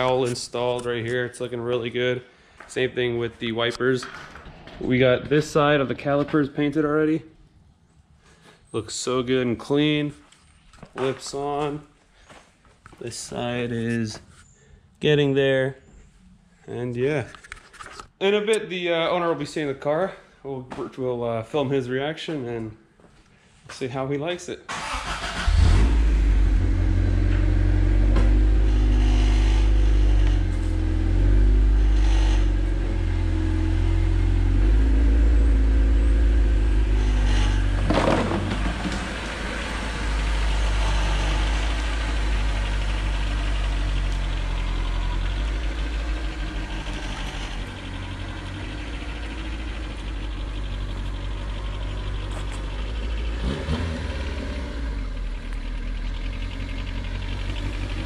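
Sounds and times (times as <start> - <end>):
car engine revving: 24.7 - 58.0.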